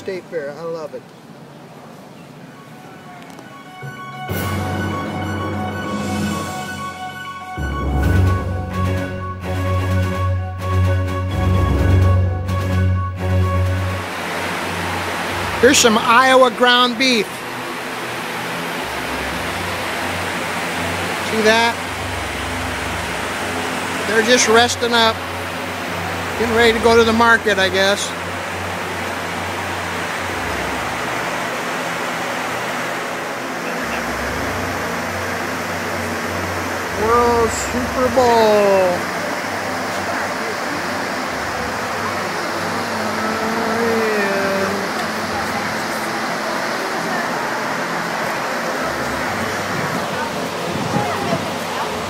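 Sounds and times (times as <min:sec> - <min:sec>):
steady rushing noise: 0:00.2 - 0:52.0
low hum: 0:02.4 - 0:52.0
indistinct voices: 0:36.9 - 0:52.0.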